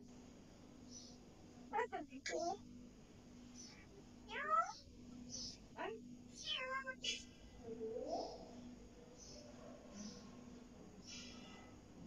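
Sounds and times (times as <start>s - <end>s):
parrot high chirp: 4.3s - 4.8s
parrot mimicking cat meow: 4.3s - 4.8s, 6.4s - 7.1s.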